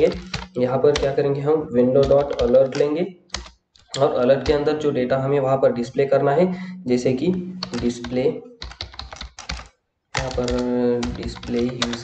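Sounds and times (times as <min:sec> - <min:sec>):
computer keyboard typing: 0:00.0 - 0:04.8, 0:07.0 - 0:12.0.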